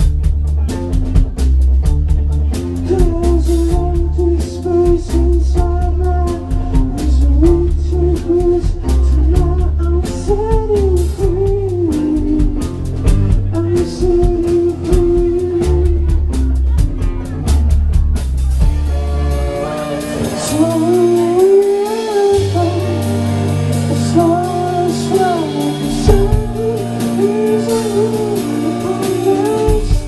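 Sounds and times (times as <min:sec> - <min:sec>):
bending guitar melody: 0:00.0 - 0:30.0
pulsing bass line: 0:00.0 - 0:30.0
rock band playing live: 0:00.0 - 0:30.0
drum hits: 0:12.4 - 0:19.1.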